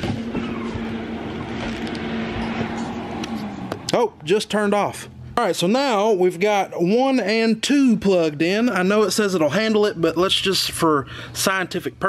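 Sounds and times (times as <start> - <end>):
cooling fans whirring: 0.0 - 12.0.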